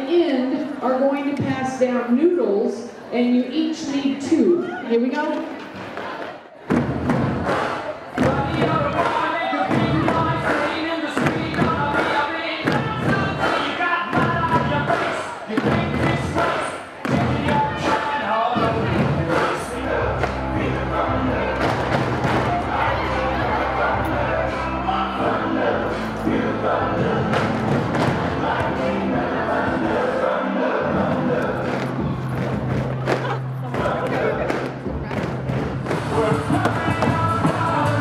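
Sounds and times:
pool noodles drumming on buckets: 0:06.7 - 0:18.0, 0:31.7 - 0:38.0
upbeat music: 0:06.9 - 0:38.0
heavy bass line: 0:18.6 - 0:38.0.

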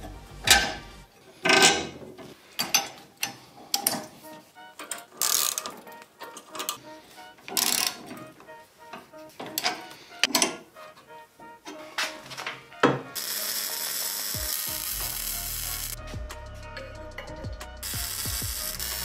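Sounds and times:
ratchet wrench clicking: 0:05.2 - 0:05.7, 0:13.2 - 0:16.0, 0:17.8 - 0:19.0.

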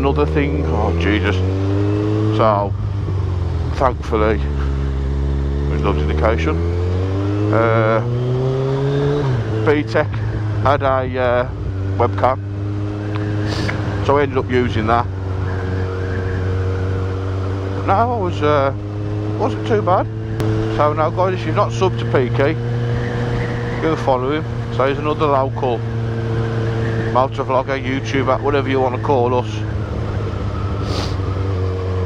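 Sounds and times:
motorcycle engine cruising: 0:00.0 - 0:32.0
wind and road noise: 0:00.0 - 0:32.0.

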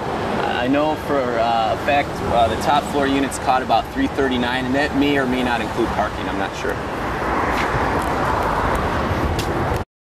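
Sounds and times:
passing vehicles rushing: 0:00.0 - 0:09.8.

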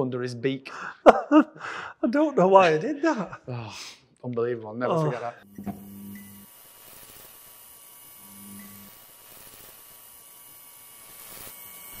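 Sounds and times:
electrical hum with hiss: 0:04.8 - 0:12.0.

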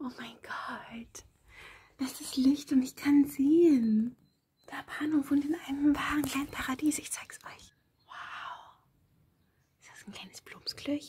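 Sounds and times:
woman whispering: 0:00.0 - 0:01.3, 0:04.6 - 0:08.9, 0:09.8 - 0:11.0.

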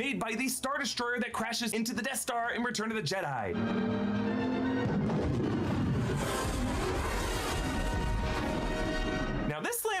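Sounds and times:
orchestral music: 0:03.5 - 0:09.5
crash and explosion with deep rumble: 0:04.7 - 0:09.5.

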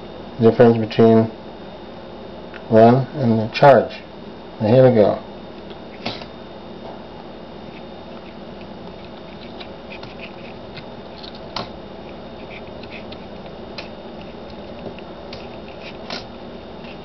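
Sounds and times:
pulse motor humming: 0:05.3 - 0:17.0.

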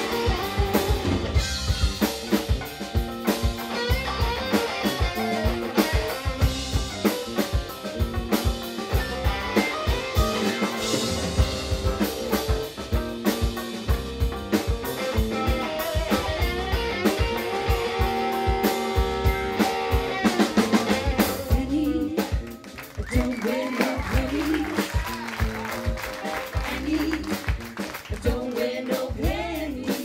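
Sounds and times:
drum kit beat: 0:00.0 - 0:30.0
live band playing instrumental: 0:00.0 - 0:30.0.

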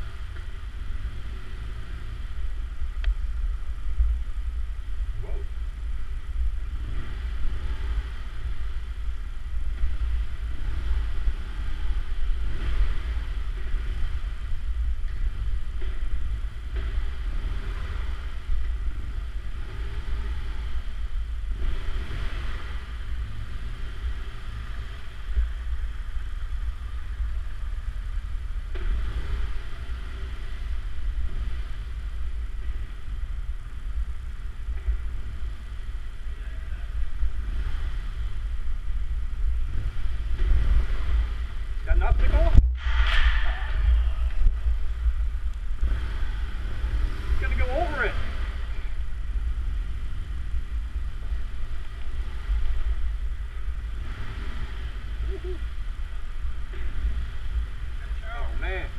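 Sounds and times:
motorcycle engine rumbling: 0:00.0 - 0:58.9.

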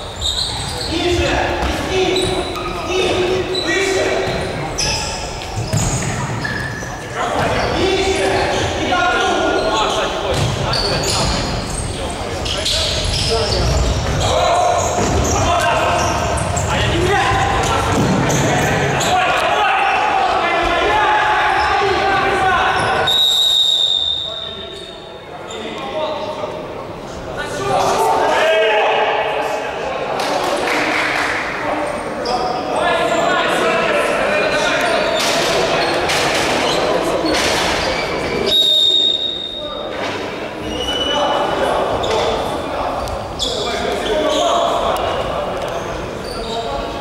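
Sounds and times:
players shouting: 0:12.4 - 0:23.2
whistle blowing: 0:23.0 - 0:25.0, 0:38.5 - 0:39.8.

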